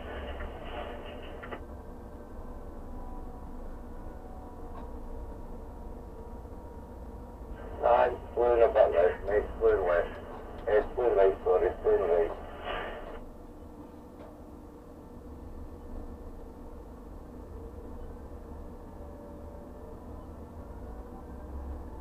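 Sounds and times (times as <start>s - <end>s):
steady low hum: 0.0s - 18.7s
voice over two-way radio: 7.6s - 13.2s.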